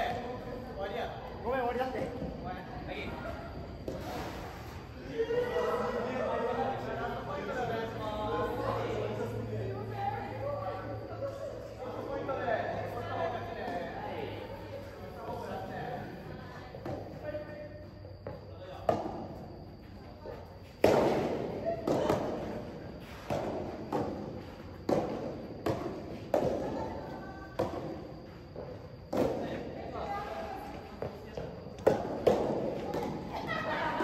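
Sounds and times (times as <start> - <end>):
rackets hitting ball: 18.2 - 19.7, 20.6 - 29.7, 31.0 - 33.4.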